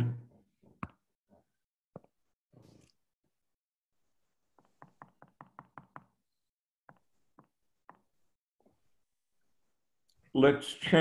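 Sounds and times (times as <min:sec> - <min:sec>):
rapid mouse clicking: 0:04.6 - 0:06.2.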